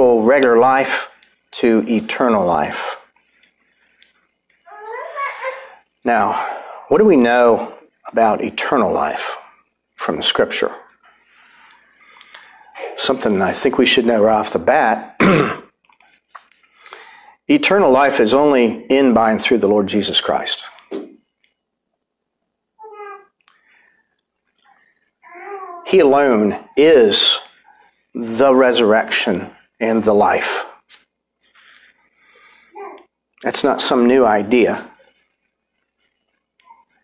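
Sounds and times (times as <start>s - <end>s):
man speaking: 0.0s - 3.1s, 6.0s - 10.9s, 12.8s - 15.2s, 17.5s - 20.8s, 25.8s - 27.6s, 28.2s - 31.0s, 33.4s - 35.0s.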